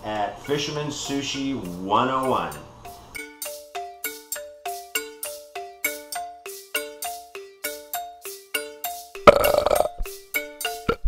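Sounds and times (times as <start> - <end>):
marimba-like mallet music: 0.0 - 11.0
loud burp: 9.3 - 10.0.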